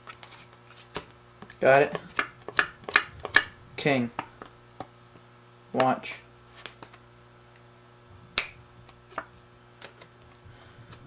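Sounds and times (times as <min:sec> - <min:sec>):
sharp snap: 0:08.4 - 0:08.6
playing cards clicking: 0:08.9 - 0:10.1.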